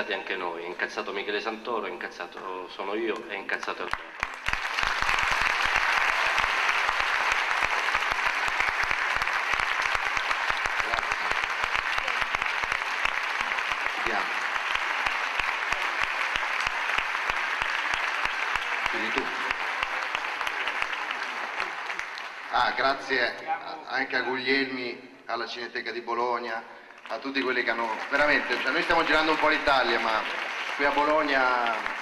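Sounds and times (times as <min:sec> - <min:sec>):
crowd applauding: 0:03.6 - 0:23.5, 0:26.8 - 0:32.0.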